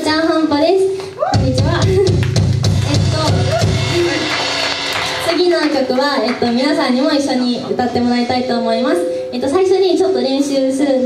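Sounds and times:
live band playing: 1.4 - 8.6.

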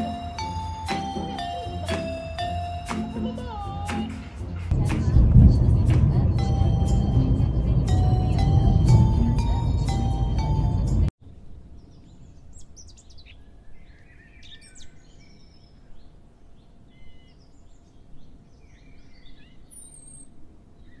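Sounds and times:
small birds chirping: 11.2 - 21.0.

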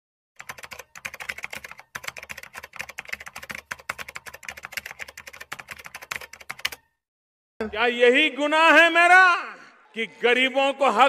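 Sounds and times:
keyboard typing clicks: 0.4 - 6.9.

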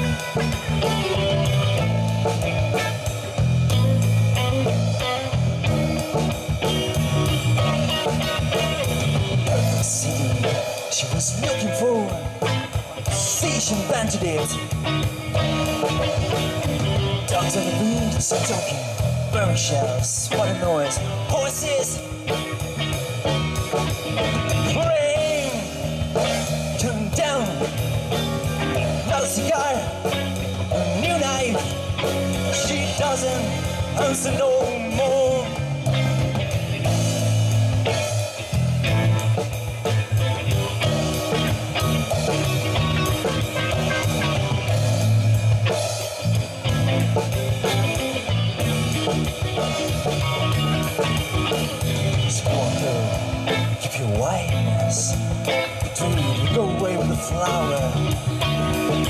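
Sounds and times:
bending electric guitar lead: 0.0 - 59.0
rock band playing live: 0.0 - 59.0.

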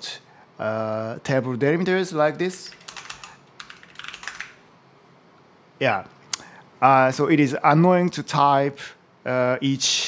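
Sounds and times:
typing on computer keyboard: 2.6 - 4.6.

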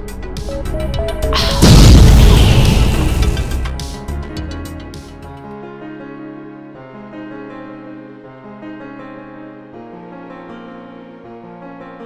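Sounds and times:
melodic intro music: 0.2 - 4.5
deep boom: 1.4 - 3.9.

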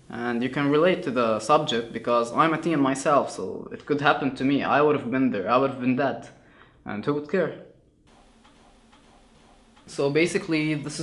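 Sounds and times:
low steady hiss: 0.0 - 7.5, 8.1 - 11.0.

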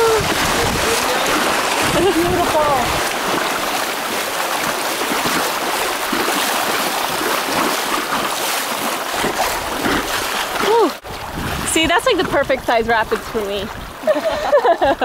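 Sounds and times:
whitewater rushing through rapids: 0.0 - 11.0.

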